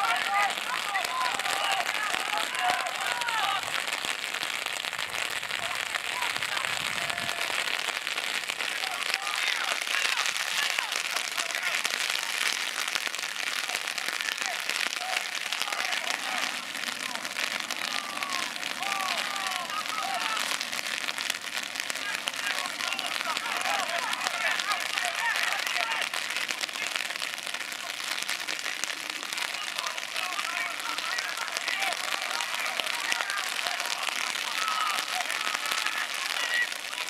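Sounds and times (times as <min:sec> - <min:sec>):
distant shouts: 0:00.0 - 0:04.5, 0:05.1 - 0:37.0
rain pattering: 0:00.0 - 0:37.0.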